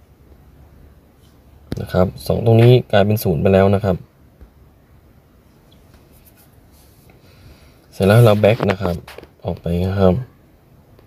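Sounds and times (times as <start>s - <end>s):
low background hiss: 0.0s - 11.0s
faint scratchy rustling: 5.4s - 9.6s.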